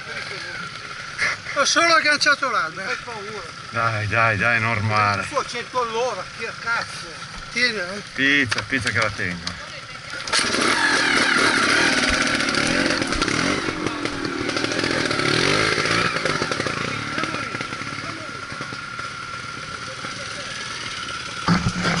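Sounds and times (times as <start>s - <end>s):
motorcycle engine revving hard: 10.2s - 22.0s.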